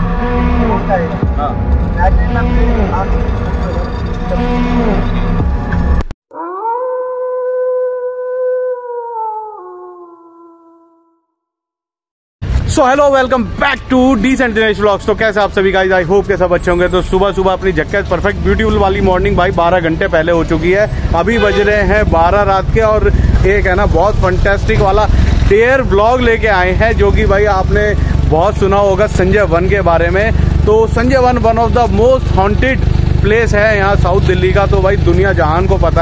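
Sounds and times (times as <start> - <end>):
steady low rumble: 0.0 - 6.1, 14.5 - 36.0
man talking: 0.4 - 5.3, 12.6 - 36.0
dog howling: 6.3 - 11.0.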